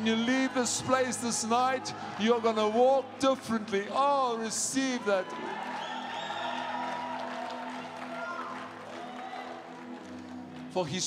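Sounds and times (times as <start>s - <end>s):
soft worship music chords: 0.0s - 5.6s.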